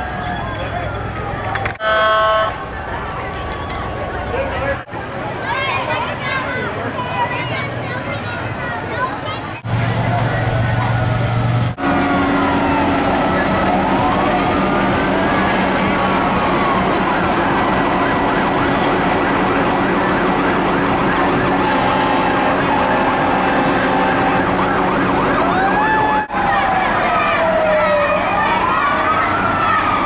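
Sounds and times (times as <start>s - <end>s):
sirens wailing: 0.0s - 5.4s, 9.6s - 30.0s
steady engine hum: 0.0s - 30.0s.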